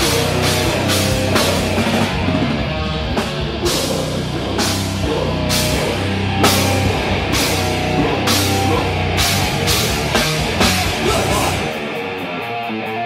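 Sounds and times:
death metal band playing: 0.0 - 13.0.

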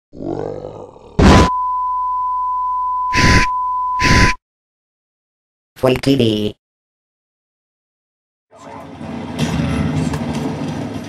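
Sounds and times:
cartoon dinosaur roar: 0.1 - 1.4.

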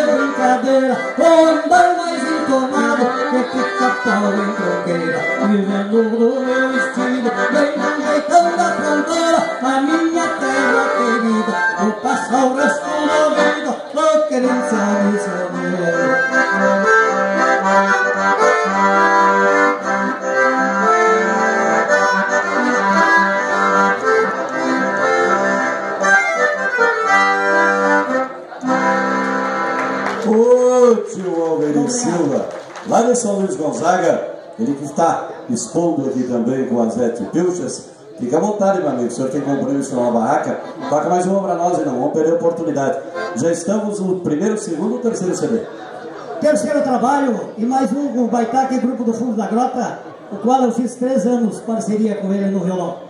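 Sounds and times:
button accordion playing: 0.0 - 33.2, 38.5 - 46.7
person speaking: 30.2 - 53.0.

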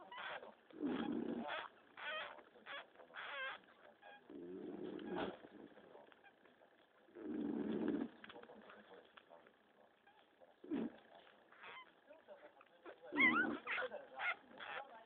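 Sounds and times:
puppy yelping: 0.0 - 4.2, 11.5 - 12.0, 12.8 - 14.9
puppy growling: 0.0 - 6.3, 7.1 - 8.4, 10.0 - 11.9, 12.8 - 14.9.

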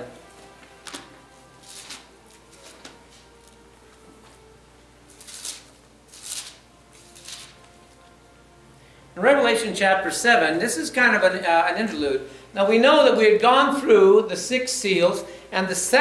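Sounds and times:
paper pages rustling: 0.6 - 3.6, 5.1 - 8.1.

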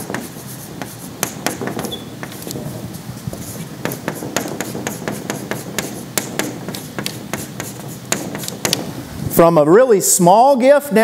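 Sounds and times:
chalk tapping and scratching on board: 0.0 - 8.9.

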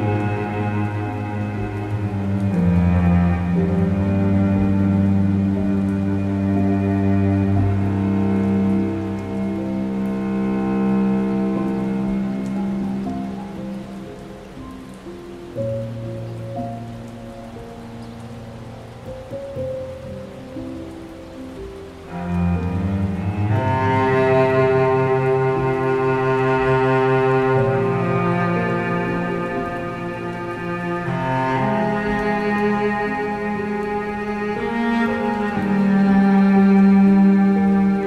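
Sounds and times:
slow cello music: 0.0 - 38.0
steady rain: 0.0 - 38.0.

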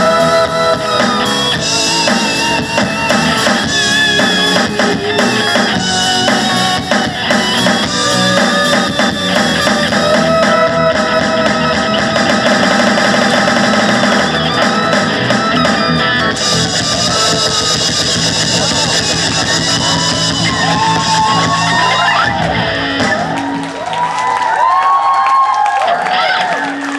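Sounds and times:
live rock band playing: 0.0 - 24.9.

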